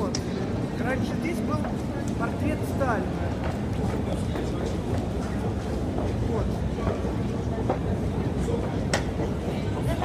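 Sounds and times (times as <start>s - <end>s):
faint clicks from moving steps: 1.6s - 2.2s.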